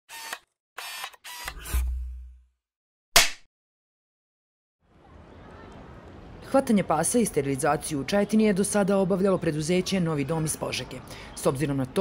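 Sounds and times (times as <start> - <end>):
mechanical camera-like bursts: 0.1 - 1.8.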